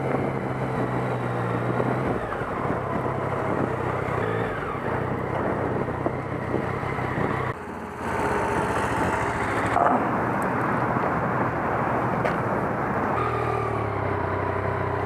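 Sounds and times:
motorcycle engine hum: 0:00.0 - 0:15.0
road and wind noise: 0:00.0 - 0:15.0.

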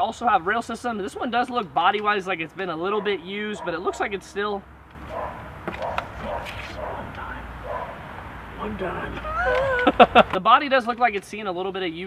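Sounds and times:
dog barking: 0:03.0 - 0:04.1, 0:05.1 - 0:08.0.

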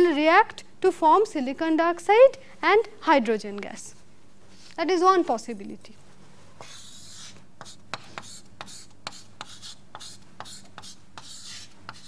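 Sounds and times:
pen scratching on paper: 0:06.6 - 0:12.0.

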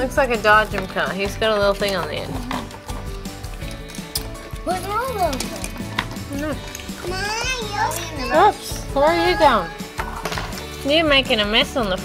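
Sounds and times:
background music: 0:00.0 - 0:12.0
children's voices: 0:07.0 - 0:09.9.

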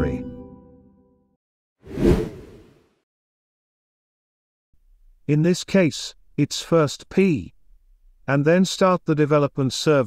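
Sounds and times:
whoosh sound effect: 0:01.9 - 0:02.7.

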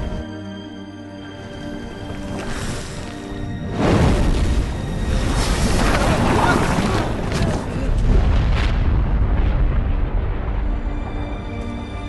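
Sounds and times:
music: 0:00.0 - 0:12.0
deep volcano rumble: 0:01.4 - 0:12.0.

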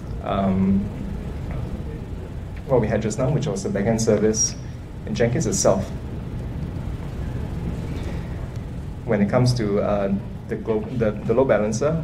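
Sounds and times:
low rumble and faint hiss: 0:00.0 - 0:12.0.

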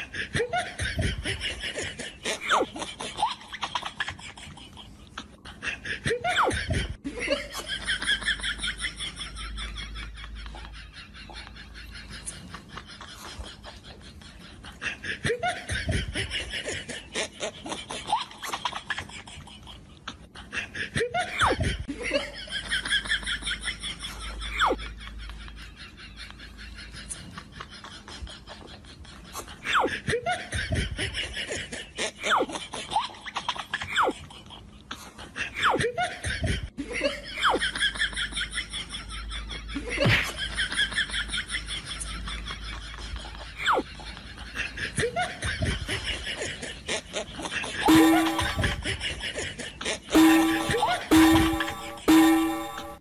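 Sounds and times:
person snickering and chuckling: 0:00.0 - 0:22.7, 0:43.2 - 0:51.1.

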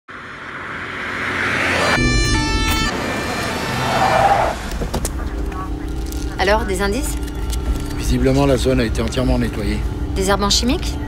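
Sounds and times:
car passing: 0:00.1 - 0:11.0.

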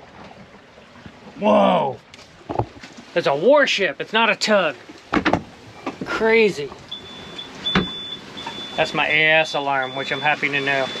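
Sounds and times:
electronic alarm beeps: 0:06.9 - 0:11.0.

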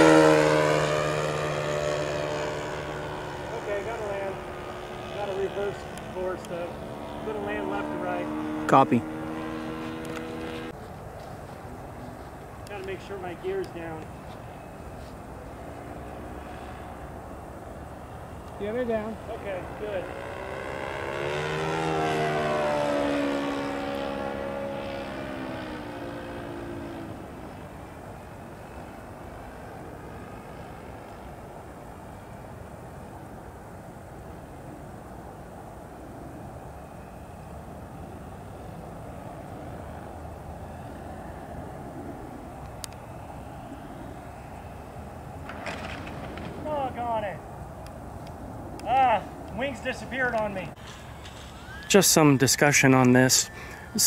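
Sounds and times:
model plane engine passing: 0:00.0 - 0:10.8, 0:12.6 - 0:54.0
model plane landing on grass: 0:45.4 - 0:47.3.

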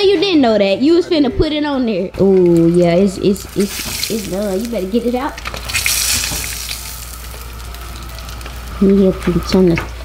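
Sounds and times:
fish frying in hot oil: 0:03.3 - 0:09.5.

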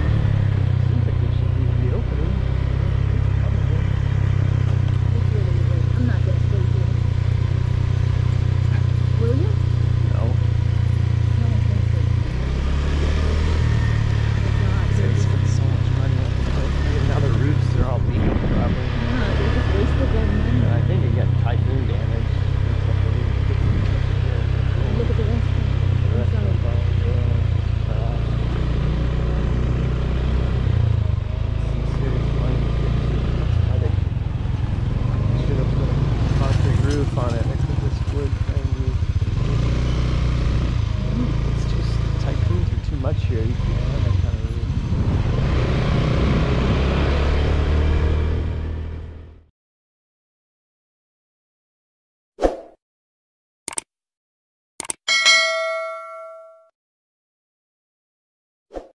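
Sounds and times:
road noise: 0:00.0 - 0:49.5
vehicle engine drone: 0:00.0 - 0:49.5.

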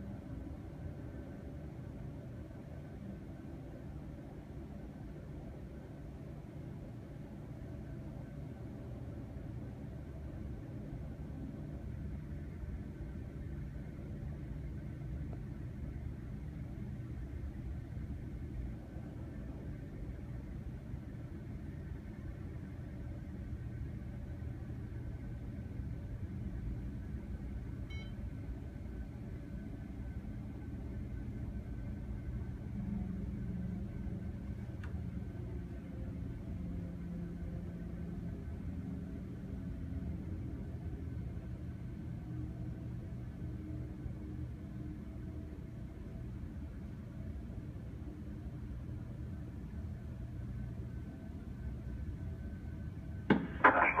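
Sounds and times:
faint steady hum: 0:00.0 - 0:54.0
jet engines rumbling: 0:53.3 - 0:54.0
person's voice close: 0:53.5 - 0:54.0.

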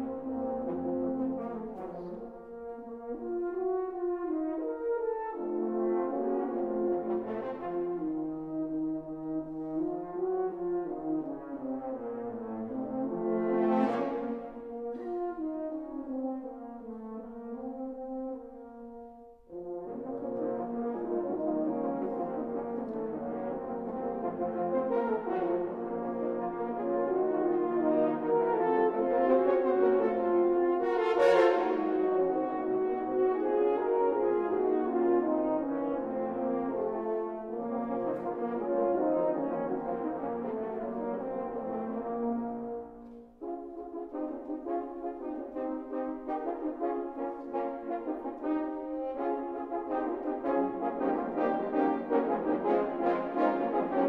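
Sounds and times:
french horn choir playing: 0:00.0 - 0:54.0.

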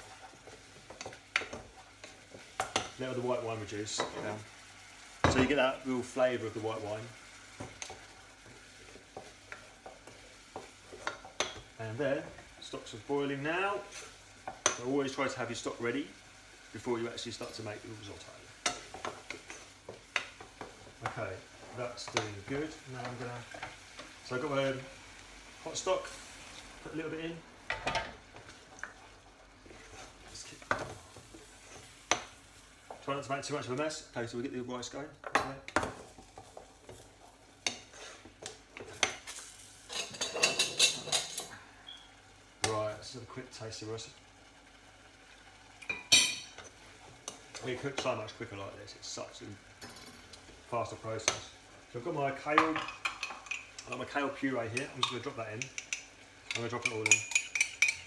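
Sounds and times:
spoon stirring rice in saucepan: 0:00.0 - 0:33.9, 0:34.8 - 0:43.5, 0:44.1 - 0:58.0
spoon stirring: 0:52.6 - 0:58.0.

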